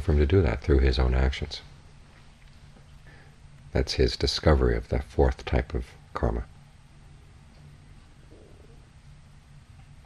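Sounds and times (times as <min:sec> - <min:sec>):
steady low hum with hiss: 0:00.0 - 0:10.0.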